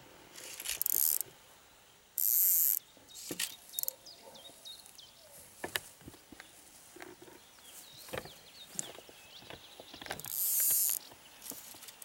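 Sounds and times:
fishing line hissing: 0.4s - 1.3s, 2.2s - 4.0s, 10.2s - 11.0s
fishing reel clicks: 0.6s - 1.3s, 2.2s - 2.8s, 10.2s - 11.0s.

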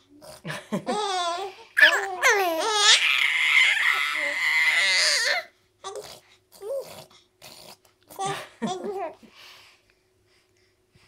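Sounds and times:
infant crying out high-pitched: 1.4s - 5.5s.

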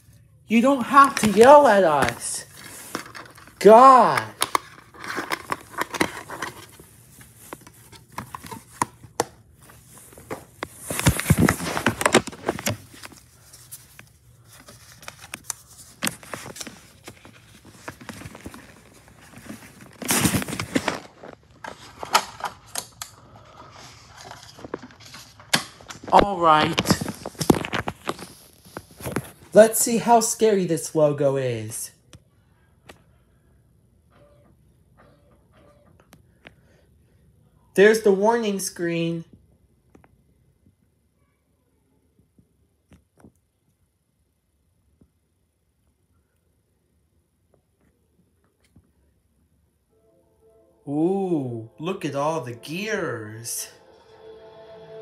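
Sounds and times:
plastic case clicks and rustling: 4.2s - 6.8s.

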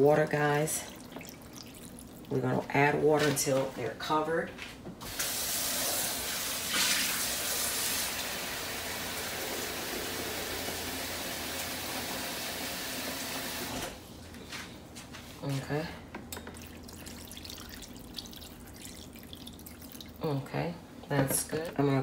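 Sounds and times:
tap water filling a bowl: 0.8s - 2.3s, 16.3s - 20.2s.

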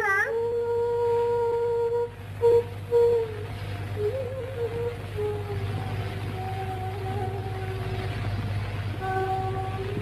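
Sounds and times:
person singing high notes: 0.0s - 7.9s
low soundtrack hum: 0.0s - 10.0s.

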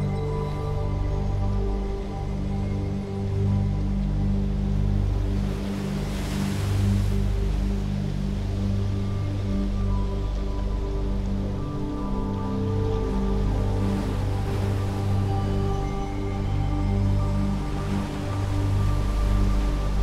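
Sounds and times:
ambient music low chords: 0.0s - 20.0s.

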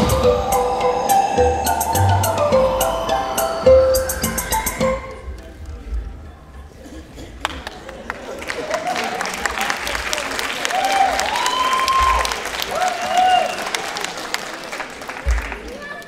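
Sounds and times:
audience applauding: 7.4s - 16.0s.

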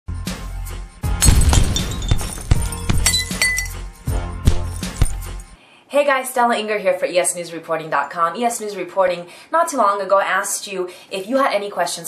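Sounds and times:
crashing glass-like effect: 1.1s - 5.4s.

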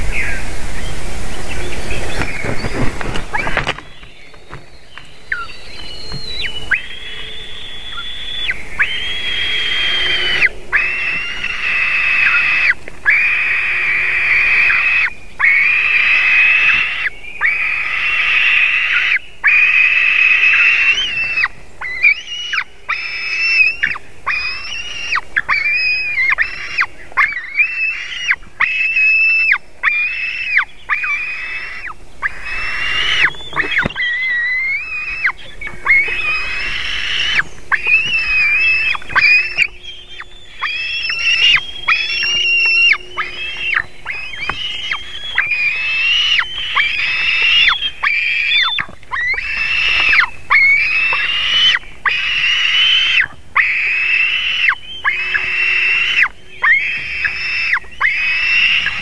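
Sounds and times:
eaglets whining calls: 0.0s - 59.0s.

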